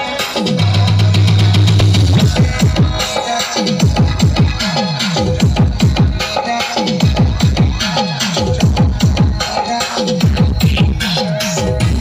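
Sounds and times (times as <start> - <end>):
loud electronic dance music: 0.0 - 12.0.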